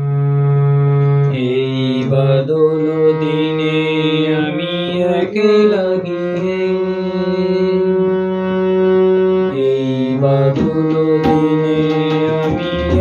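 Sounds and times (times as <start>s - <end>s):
harmonium melody: 0.0s - 13.0s
low drone note: 10.8s - 13.0s.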